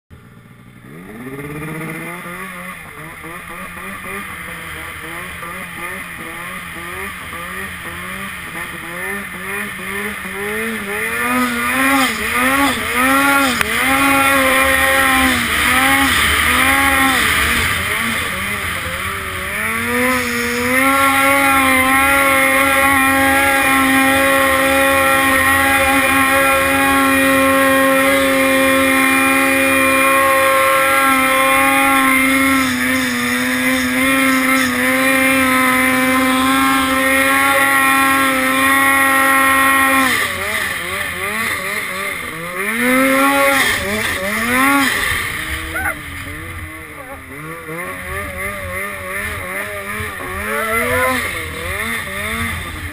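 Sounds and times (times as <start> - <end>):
snowmobile engine revving: 0.2 - 52.9.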